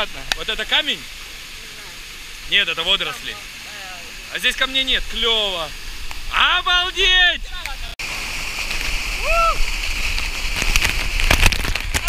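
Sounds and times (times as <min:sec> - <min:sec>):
muffled waterfall pouring: 0:00.0 - 0:12.0
water splashing on camera: 0:00.0 - 0:12.0.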